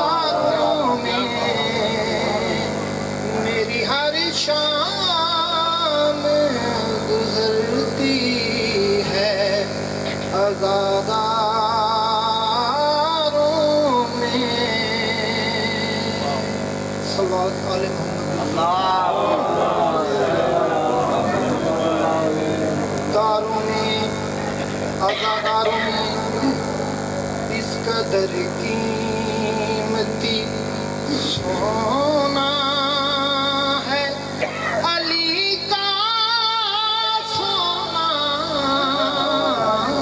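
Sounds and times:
man chanting into a microphone: 0.0s - 26.8s, 27.5s - 40.0s
steady low hum: 0.0s - 40.0s.

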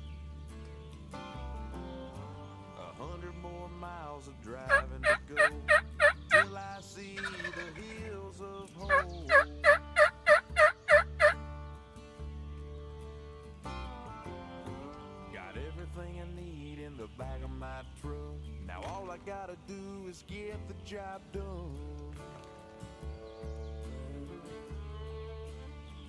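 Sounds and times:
music: 0.0s - 26.0s
wild turkey yelping: 4.7s - 6.6s, 7.2s - 8.0s, 8.9s - 11.4s.

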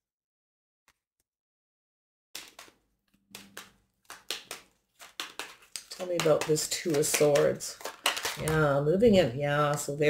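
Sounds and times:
cards being shuffled: 2.4s - 8.8s.

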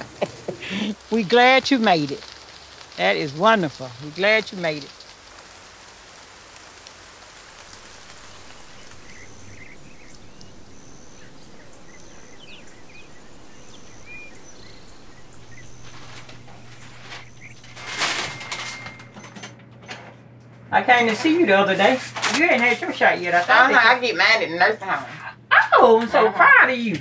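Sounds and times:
steady rain falling: 0.0s - 27.0s
low steady hum: 7.2s - 26.6s
birds chirping: 7.3s - 19.6s.

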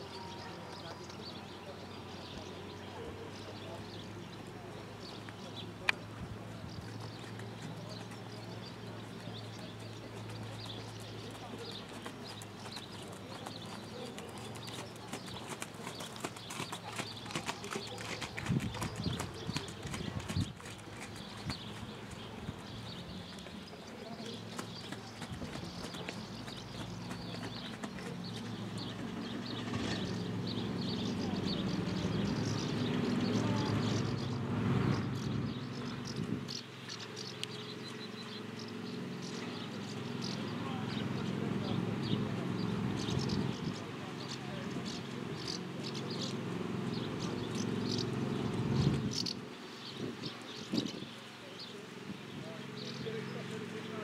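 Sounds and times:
horse hoofbeats on sand: 6.8s - 34.0s
wind on microphone: 18.4s - 20.8s, 34.8s - 36.5s, 48.5s - 49.4s, 50.0s - 51.2s.

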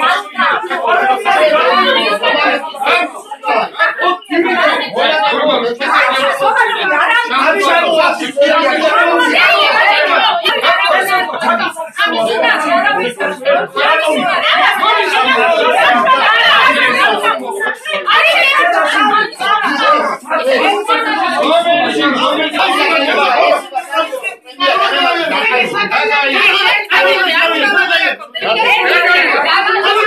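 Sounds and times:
people arguing loudly: 0.0s - 30.0s.

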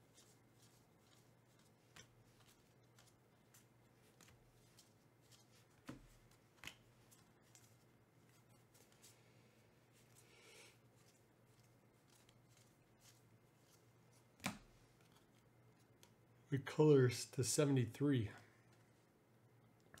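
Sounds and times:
low steady hum: 0.0s - 20.0s
cards rustling: 0.1s - 9.2s, 9.9s - 16.2s.

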